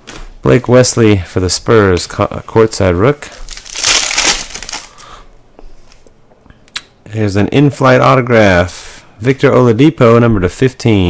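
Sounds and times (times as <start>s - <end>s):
foil wrapper crinkling: 3.2s - 5.0s.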